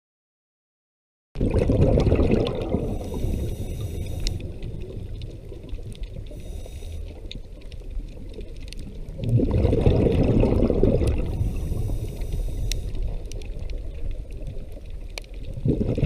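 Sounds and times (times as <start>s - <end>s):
exhaled air bubbles underwater: 1.4s - 16.0s
faint crackling clicks: 2.1s - 16.0s.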